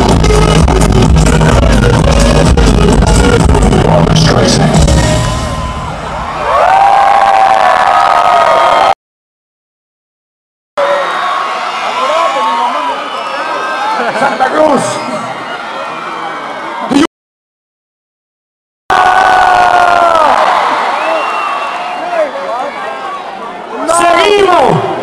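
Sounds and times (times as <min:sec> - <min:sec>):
distorted concert long held note: 0:00.0 - 0:07.4
concert crowd cheering and screaming: 0:03.3 - 0:09.0, 0:10.8 - 0:17.1, 0:18.9 - 0:25.0.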